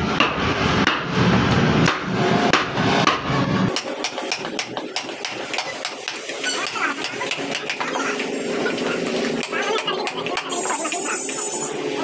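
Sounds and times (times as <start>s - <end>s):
mallet tapping carving gouge: 1.8s - 7.9s.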